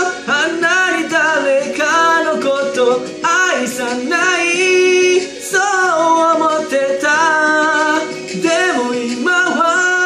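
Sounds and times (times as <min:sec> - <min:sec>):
man singing a slow ballad: 0:00.0 - 0:10.0.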